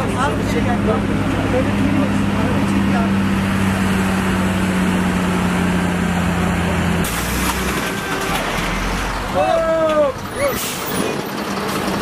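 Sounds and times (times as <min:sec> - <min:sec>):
heavy vehicles rumbling: 0:00.0 - 0:12.0.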